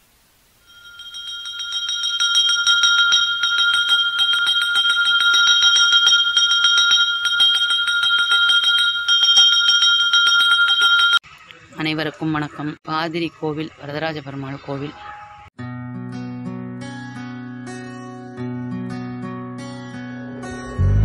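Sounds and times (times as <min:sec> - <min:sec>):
temple bell ringing fast: 0:00.7 - 0:11.2.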